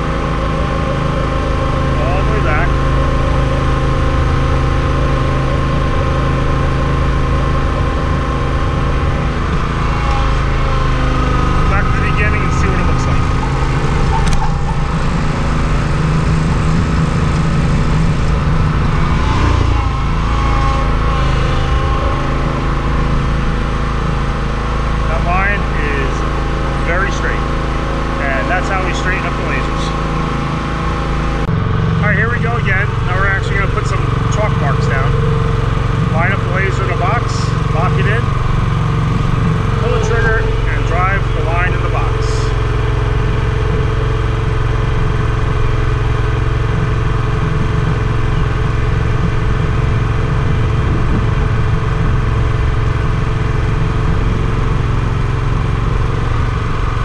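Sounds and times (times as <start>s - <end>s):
gasoline engine running: 0.0s - 57.0s.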